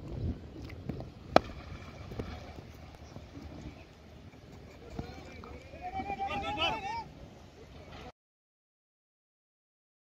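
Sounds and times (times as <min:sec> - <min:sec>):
players' voices: 0:04.6 - 0:08.1.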